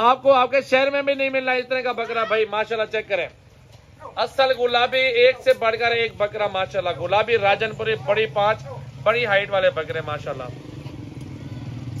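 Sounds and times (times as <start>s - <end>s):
man speaking: 0.0s - 3.4s, 4.0s - 10.6s.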